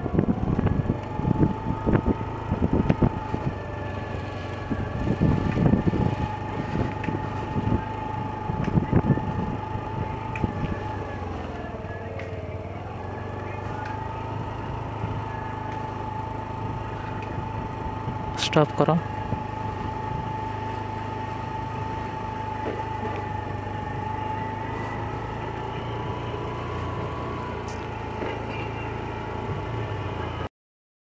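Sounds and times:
wind buffeting microphone: 0.0 - 12.0, 19.0 - 20.4
vehicle engine running: 0.0 - 30.5.

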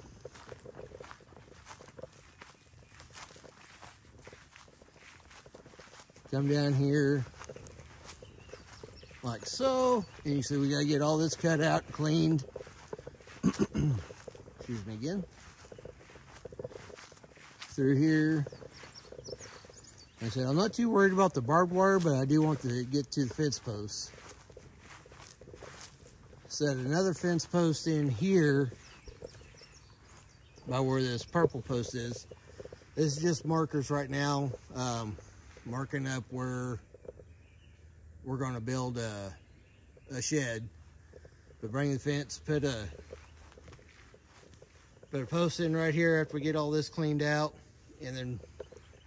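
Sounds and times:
footsteps through grass and brush: 0.0 - 37.2, 40.4 - 49.0.

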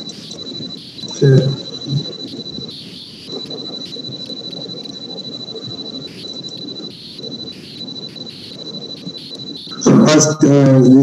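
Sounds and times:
steady high-pitched tone: 0.0 - 11.0.

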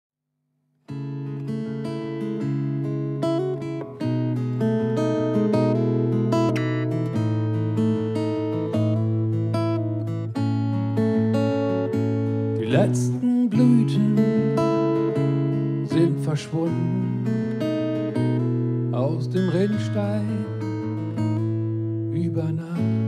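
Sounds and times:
acoustic guitar picking: 0.9 - 23.0.

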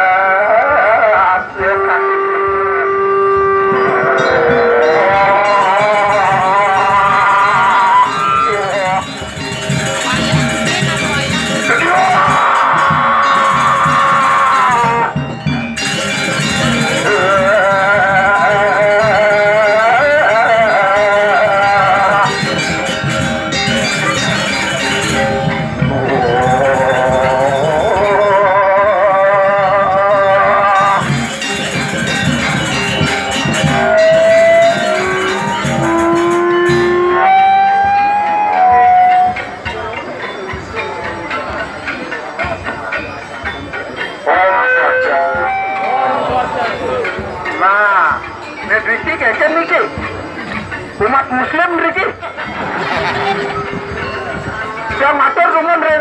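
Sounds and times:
gamelan music: 0.0 - 56.0
long held high note: 1.5 - 9.2, 33.6 - 39.4, 44.6 - 46.5
drum: 4.5 - 43.9, 45.3 - 49.3, 52.4 - 55.6.

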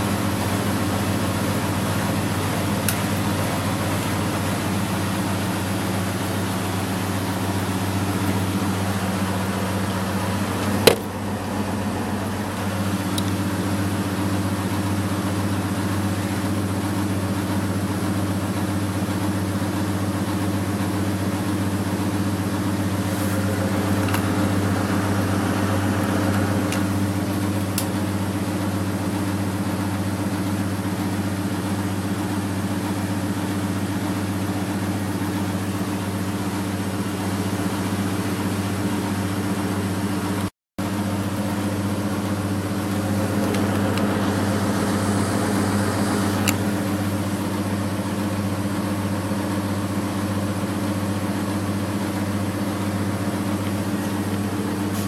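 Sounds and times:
washing machine spinning: 0.0 - 55.0.

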